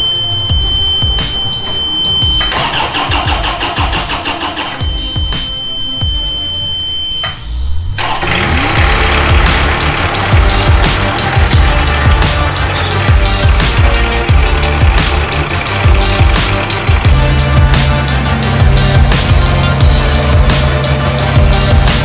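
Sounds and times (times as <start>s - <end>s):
music with steady beat: 0.0s - 7.8s, 8.6s - 22.0s
steady high-pitched tone: 0.0s - 8.0s
forklift engine cranking and starting: 0.6s - 5.5s, 7.8s - 22.0s.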